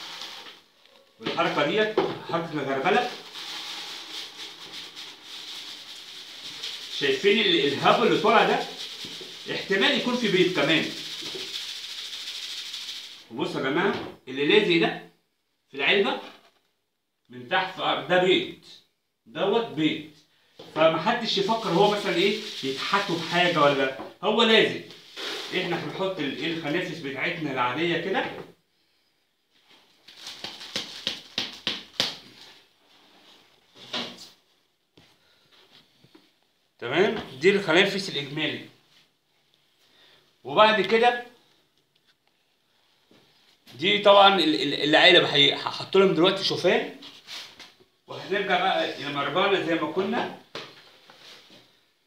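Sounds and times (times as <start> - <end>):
material rattling in plastic sieve: 0.0 - 0.6, 2.9 - 13.3, 21.1 - 24.0, 25.0 - 26.7, 30.1 - 32.6
particles pattering into basin: 3.2 - 13.3, 21.3 - 24.0.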